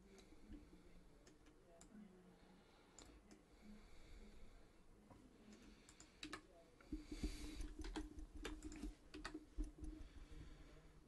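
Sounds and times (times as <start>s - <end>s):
faint computer mouse clicks: 3.0s - 3.4s, 5.5s - 10.4s.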